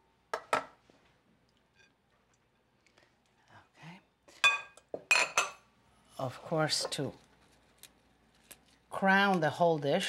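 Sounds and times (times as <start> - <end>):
glass bowls clinking: 4.4 - 5.6.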